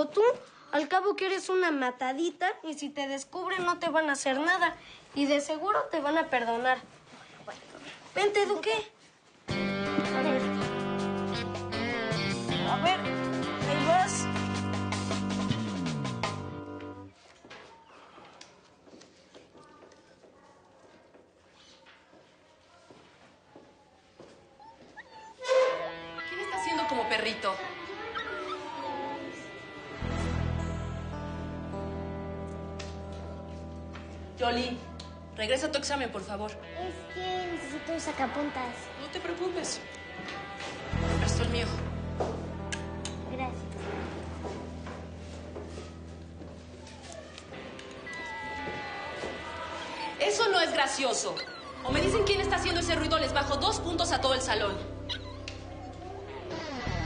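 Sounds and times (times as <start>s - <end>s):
dog whining: 24.6s - 29.9s, 46.8s - 52.2s, 55.0s - 57.0s
soft background music: 25.5s - 57.0s.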